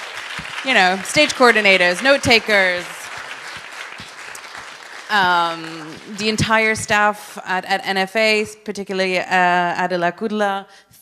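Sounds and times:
audience applauding: 0.0 - 7.0.

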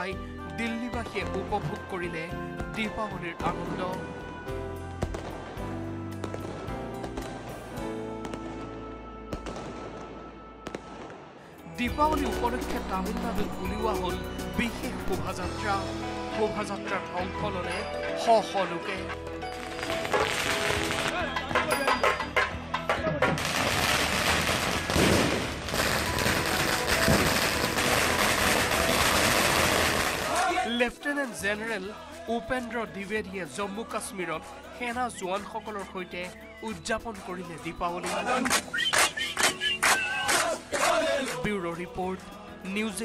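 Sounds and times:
background music: 0.0 - 43.0
firecrackers cracking: 19.5 - 30.7, 38.0 - 41.4.

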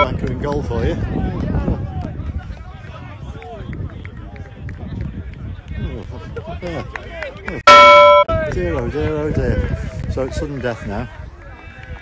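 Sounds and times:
wind rumbling on microphone: 0.0 - 7.6, 8.3 - 12.0.

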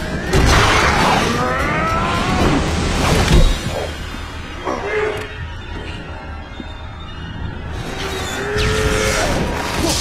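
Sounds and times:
action film score music: 0.0 - 10.0.

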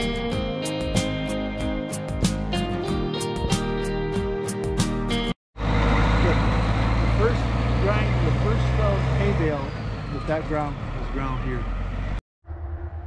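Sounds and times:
guitar music: 0.0 - 5.4
tractor engine idling: 5.6 - 12.0.

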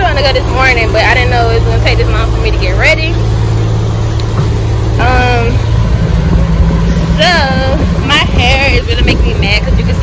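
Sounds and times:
woman speaking: 0.0 - 3.3, 5.0 - 5.7, 6.9 - 10.0
vehicle engines in traffic: 0.0 - 10.0.

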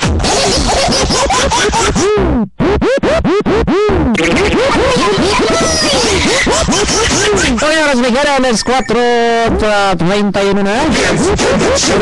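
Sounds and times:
music: 0.0 - 7.6
record scratching: 0.0 - 12.0.

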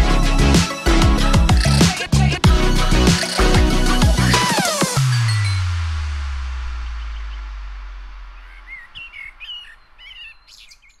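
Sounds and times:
bird chirping: 6.8 - 11.0.

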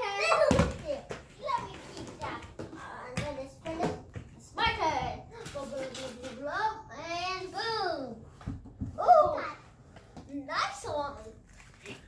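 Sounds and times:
children talking and calling out: 0.0 - 11.5.

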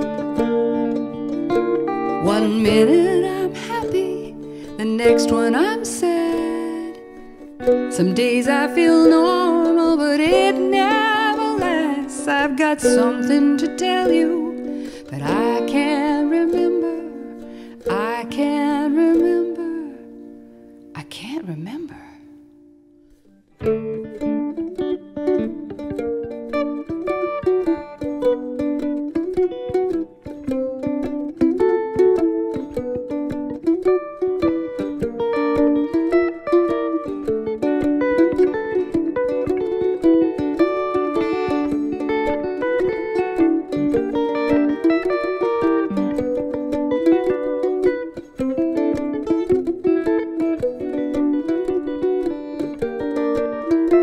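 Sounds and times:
mandolin and plucked strings playing: 0.0 - 54.0.

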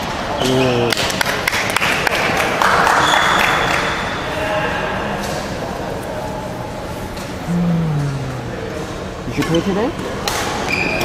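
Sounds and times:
faint voices: 4.4 - 10.0.

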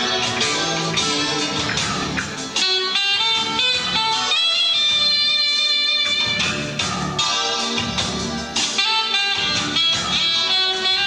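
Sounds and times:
clarinet melody: 0.0 - 11.0
guitar accompaniment: 0.0 - 11.0.

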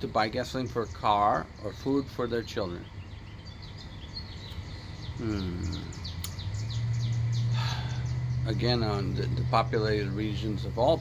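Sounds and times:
low steady hum: 0.0 - 11.0
small bird chirping: 0.0 - 11.0.

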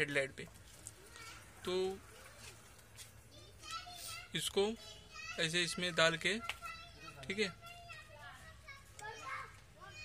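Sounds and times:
distant children talking and playing: 0.0 - 10.0.

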